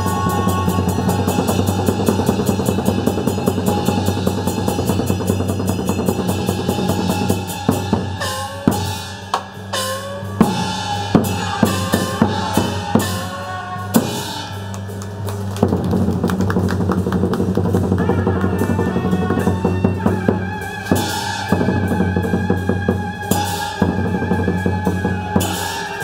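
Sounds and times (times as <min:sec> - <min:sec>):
cymbals: 0:00.0 - 0:26.0
drums: 0:00.0 - 0:26.0.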